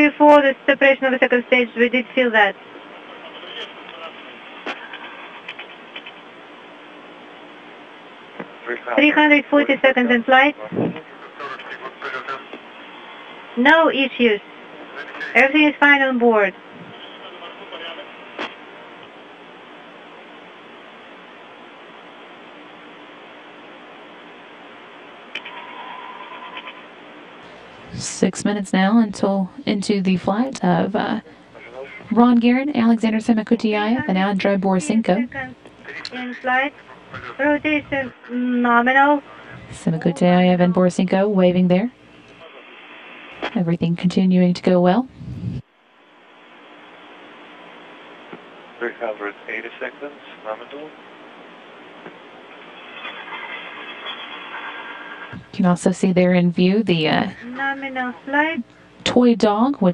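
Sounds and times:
radio link hiss: 0:00.0 - 0:59.0
faint steady hum: 0:00.0 - 0:59.9.

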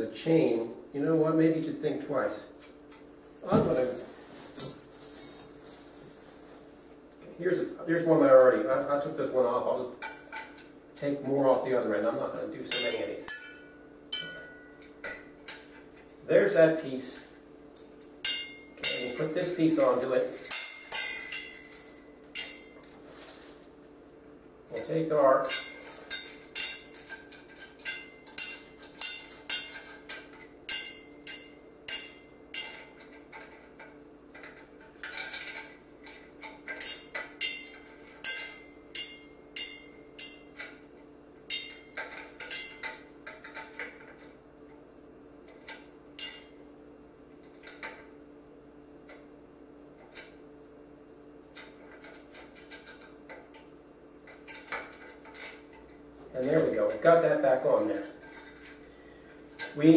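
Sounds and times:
steady low hum: 0:00.0 - 0:59.9
metal chain clinking and rattling: 0:02.9 - 0:06.8, 0:09.0 - 0:23.6, 0:24.7 - 0:40.9, 0:41.5 - 0:44.4, 0:51.4 - 0:59.9.

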